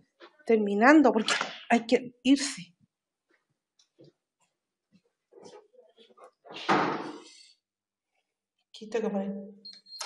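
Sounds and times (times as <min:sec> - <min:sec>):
door closing with a bang: 0:06.6 - 0:07.2.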